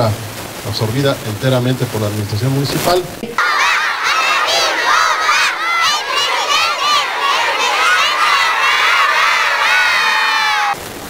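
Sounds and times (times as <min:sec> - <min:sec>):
children shouting and cheering: 0:03.4 - 0:10.8.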